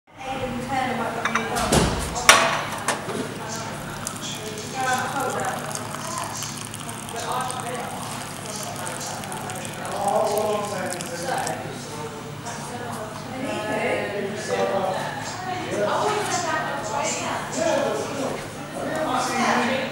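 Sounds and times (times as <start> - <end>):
chatter of voices: 0.2 - 19.9
water pouring into teacup: 2.8 - 11.9.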